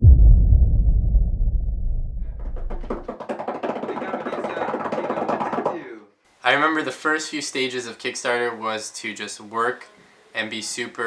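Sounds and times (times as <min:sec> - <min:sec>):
deep rumble: 0:00.0 - 0:02.9.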